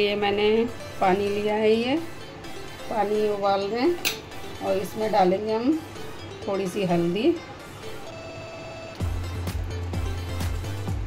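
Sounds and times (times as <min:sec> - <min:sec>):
bass-heavy drum beat: 0:09.0 - 0:11.0.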